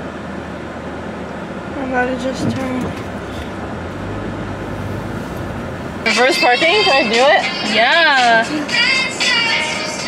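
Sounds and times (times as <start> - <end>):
car engine hum inside cabin: 0.0 - 10.0.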